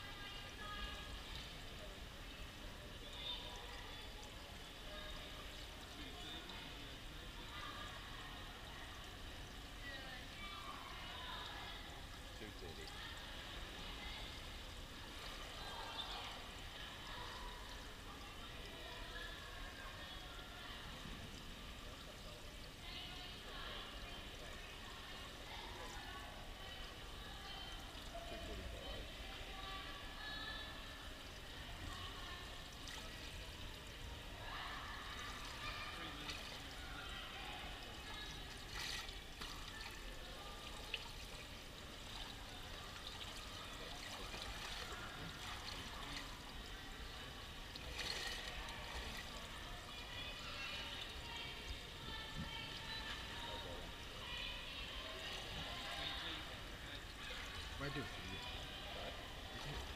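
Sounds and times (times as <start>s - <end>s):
faint talk: 0.0s - 59.9s
water trickling into gutter: 0.0s - 59.9s.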